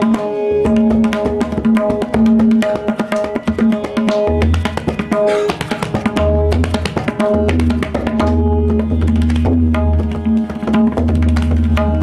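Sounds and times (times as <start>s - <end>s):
harmonium melody: 0.0s - 12.0s
tabla drumming: 0.0s - 12.0s.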